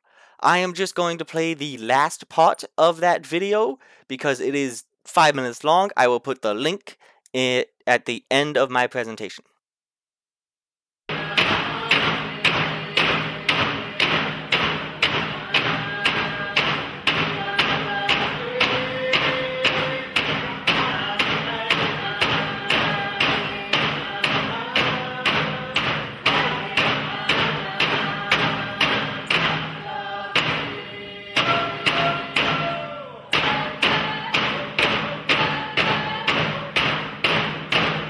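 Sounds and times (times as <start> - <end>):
voices singing: 11.1 - 37.2
frame drums beaten: 11.1 - 38.0.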